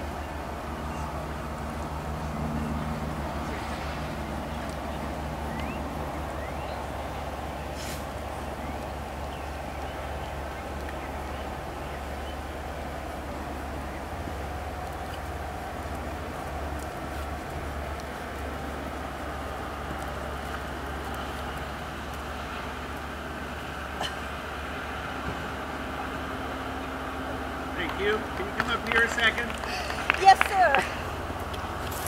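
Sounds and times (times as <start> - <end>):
outdoor rumble and hiss: 0.0 - 32.0.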